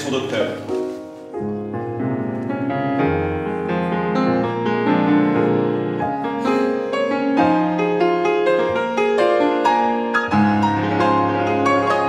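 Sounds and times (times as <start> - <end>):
piano classical piece: 0.0 - 12.0.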